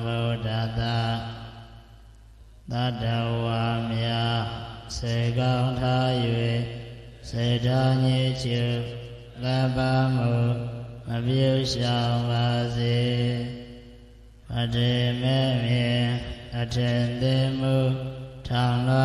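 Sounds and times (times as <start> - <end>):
monk chanting into microphone: 0.0 - 2.0, 2.6 - 19.0.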